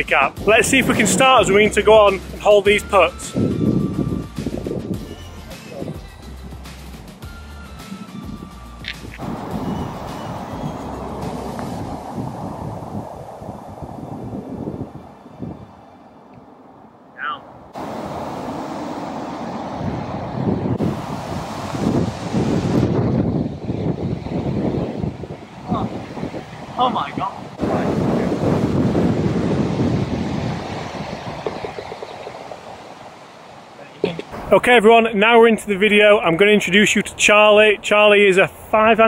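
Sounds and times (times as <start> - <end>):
background music: 0.0 - 12.0
wind buffeting microphone: 0.0 - 39.0.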